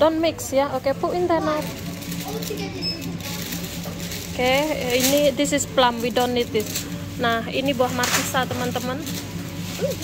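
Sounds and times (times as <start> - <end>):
faint voices: 0.0 - 10.0
low steady hum: 0.0 - 10.0.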